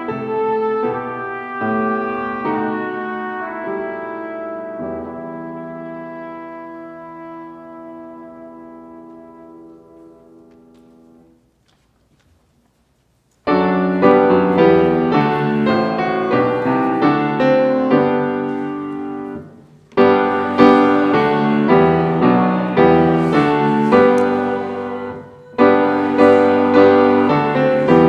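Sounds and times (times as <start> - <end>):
trumpet and piano chord: 0.0 - 10.6, 13.5 - 28.0
grand piano playing loud chords: 0.0 - 11.4, 13.4 - 28.0.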